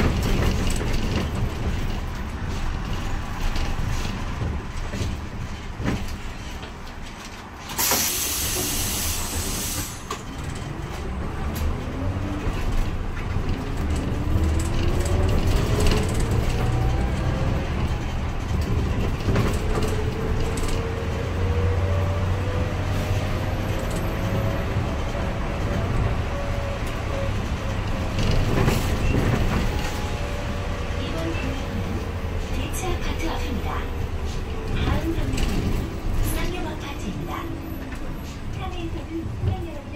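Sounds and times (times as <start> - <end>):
bus engine whine: 0.0 - 39.9
road noise: 0.0 - 39.9
air hiss: 7.8 - 10.0.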